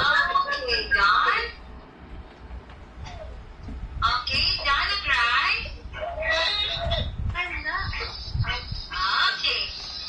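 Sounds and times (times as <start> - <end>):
high-pitched voice calling out: 4.1 - 9.8.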